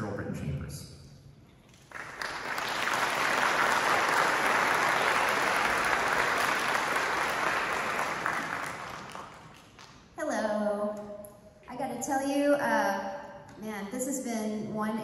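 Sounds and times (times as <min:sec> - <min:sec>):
audience applauding: 0:01.7 - 0:10.0.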